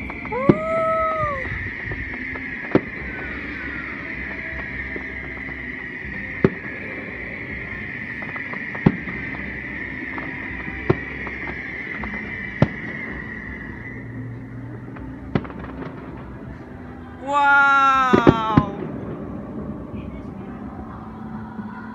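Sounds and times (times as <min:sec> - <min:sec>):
faint fireworks pops: 0:00.0 - 0:16.7, 0:17.9 - 0:20.9
distant fireworks bangs: 0:00.0 - 0:16.8
high-pitched whine: 0:00.0 - 0:21.9.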